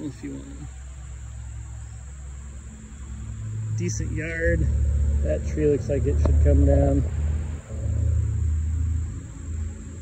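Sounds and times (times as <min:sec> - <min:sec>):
high-pitched insect drone: 0:00.0 - 0:10.0
low outdoor rumble: 0:00.0 - 0:10.0.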